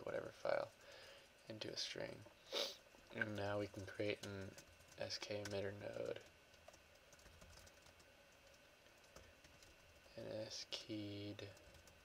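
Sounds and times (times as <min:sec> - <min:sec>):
faint computer keyboard typing: 0:03.0 - 0:12.0.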